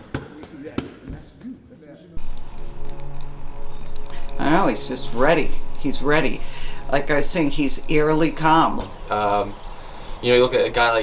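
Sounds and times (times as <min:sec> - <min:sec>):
boxing gloves slapping mitts: 0:00.0 - 0:01.2.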